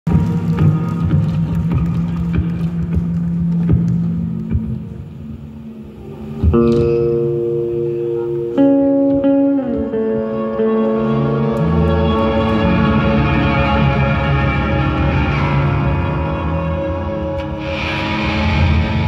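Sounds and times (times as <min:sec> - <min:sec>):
live post-rock band playing: 0:00.1 - 0:19.0.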